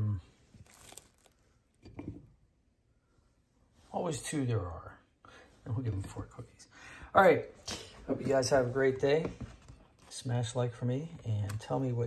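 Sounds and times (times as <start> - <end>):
cookies moved on ceramic plate: 0.6 - 2.2.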